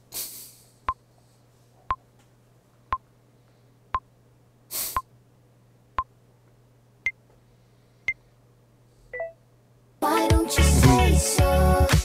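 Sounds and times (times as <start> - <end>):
countdown timer beeps: 9.2 - 9.4.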